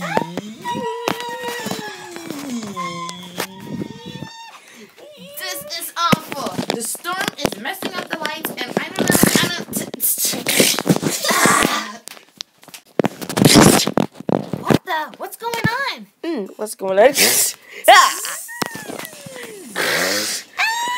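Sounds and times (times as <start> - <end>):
children crying and squealing: 0.0 - 6.0, 18.0 - 19.8, 20.5 - 20.9
loud breathy hissing bursts: 19.7 - 20.6.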